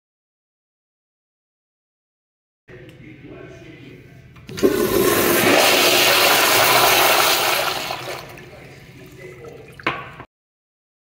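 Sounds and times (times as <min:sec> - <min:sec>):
toilet flushing: 0:04.5 - 0:10.3.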